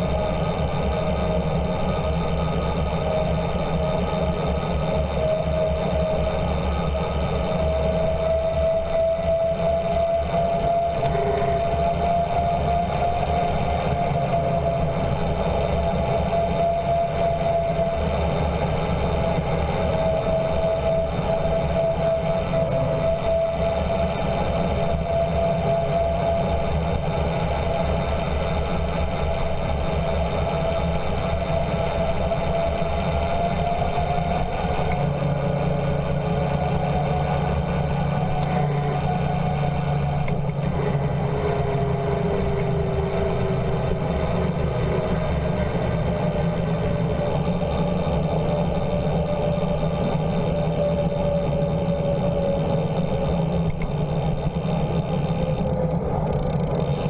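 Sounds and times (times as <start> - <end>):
low road rumble: 0.0 - 57.0
tyres and brakes whining: 0.0 - 57.0.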